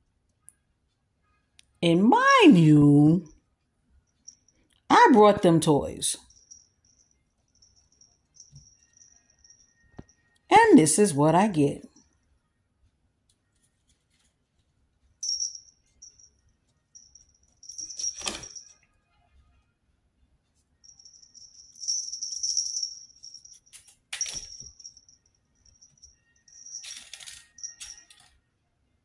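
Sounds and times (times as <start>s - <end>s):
collar bell jingling: 6.2s - 10.3s, 15.2s - 18.8s, 20.8s - 28.3s.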